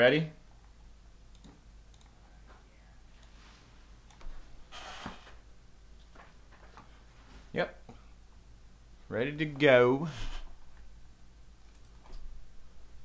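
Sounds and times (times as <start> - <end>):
faint clicks: 1.3 - 2.2.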